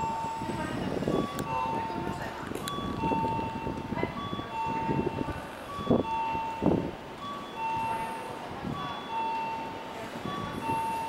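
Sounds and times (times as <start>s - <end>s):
two-tone electronic chime: 2.7s - 11.0s.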